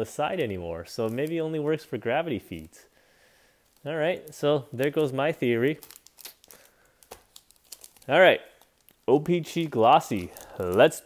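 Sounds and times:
wrappers crinkling: 0.0 - 2.7, 3.4 - 11.0.

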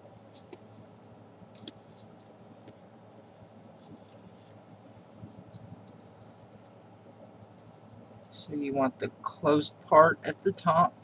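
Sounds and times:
paper rustling and creasing: 0.2 - 6.7.

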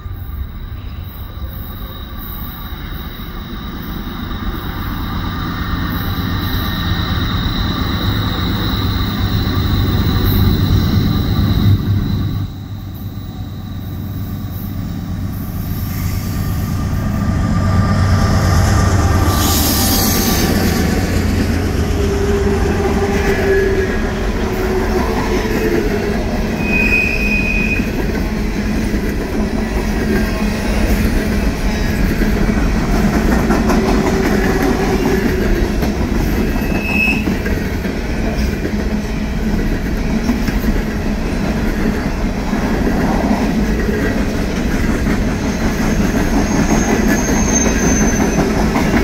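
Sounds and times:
train wheel squeal: 0.0 - 28.4, 29.6 - 49.0
train rumbling on track: 0.0 - 49.0.

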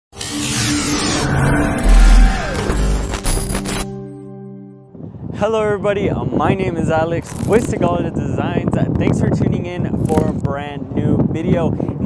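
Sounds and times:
car engine sound effects: 0.5 - 4.0.

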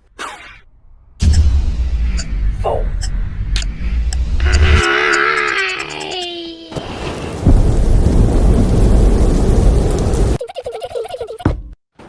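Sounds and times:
rain-like noise: 4.4 - 10.4
loud thunder rumble: 6.8 - 10.4.

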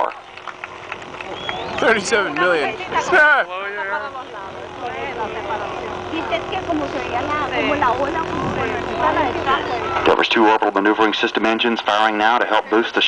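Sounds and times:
constant hum: 0.0 - 13.0
low steady rumble: 0.0 - 13.0
many people talking: 0.0 - 13.0.

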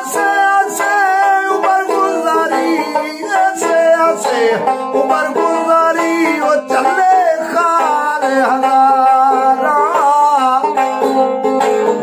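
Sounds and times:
plucked one-string lute: 0.0 - 12.0.

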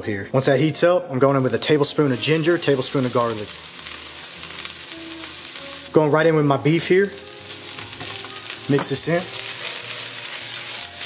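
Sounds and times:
garlic sizzling in hot oil: 1.3 - 11.0.

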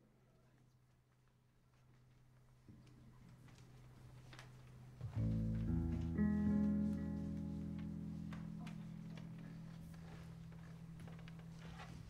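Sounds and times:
guitar plucking low notes: 5.0 - 10.6.

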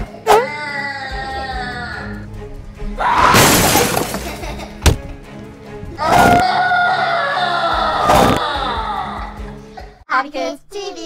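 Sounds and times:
background music: 0.0 - 11.0
crash like breaking glass: 3.3 - 4.5.

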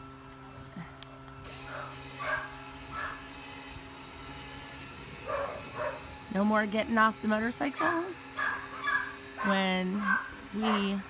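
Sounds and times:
gate opener motor humming: 1.2 - 11.0
dog barking: 1.7 - 3.2, 5.3 - 6.0, 7.8 - 11.0.

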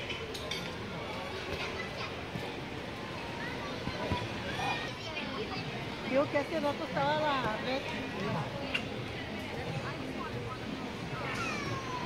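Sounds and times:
outdoor chatter: 0.0 - 12.0
people talking and calling out: 0.0 - 12.0.

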